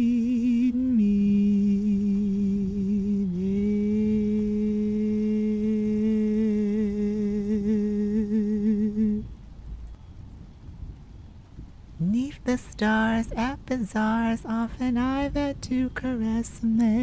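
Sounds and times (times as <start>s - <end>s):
person humming: 0.0s - 9.3s, 13.3s - 17.0s.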